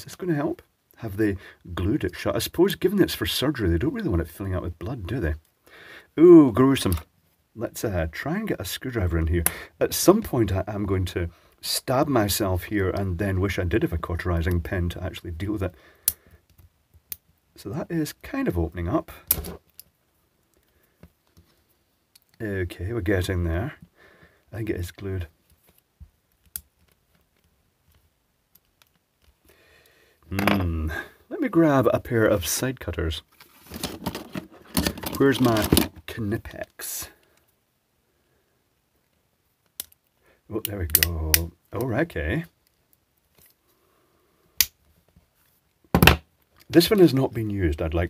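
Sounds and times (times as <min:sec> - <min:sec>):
faint handling noise: 0:18.2 - 0:29.5, 0:32.4 - 0:37.6, 0:39.0 - 0:43.8
plastic housing cracking: 0:33.7 - 0:36.0.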